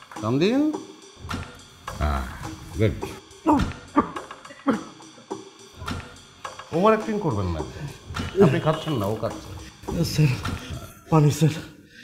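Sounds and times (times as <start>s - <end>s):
man coughing: 3.8s - 5.2s.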